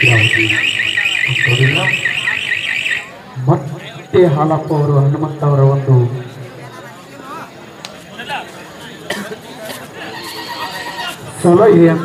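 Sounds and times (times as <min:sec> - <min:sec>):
man talking: 0:00.0 - 0:02.2, 0:03.4 - 0:06.4, 0:11.1 - 0:12.0
high warbling alarm tone: 0:00.0 - 0:03.2.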